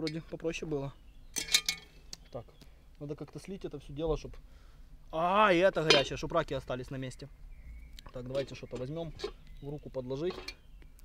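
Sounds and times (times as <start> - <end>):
metal pot clinking and rattling: 1.4 - 1.9, 5.8 - 6.2, 8.1 - 9.4, 10.2 - 10.6.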